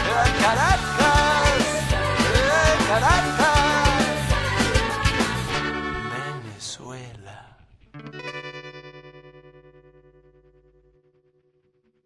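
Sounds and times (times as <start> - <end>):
electric guitar chord pulsing: 8.0 - 12.0.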